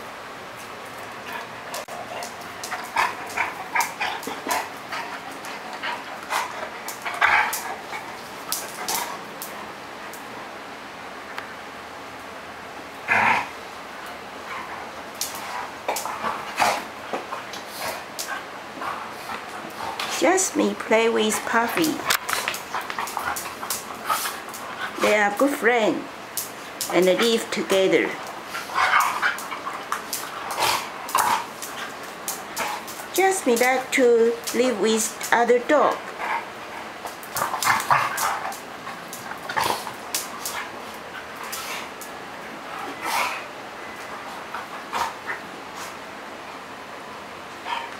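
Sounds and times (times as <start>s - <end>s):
dogs playing with clicks and scuffles: 0.5s - 10.3s, 14.0s - 46.0s.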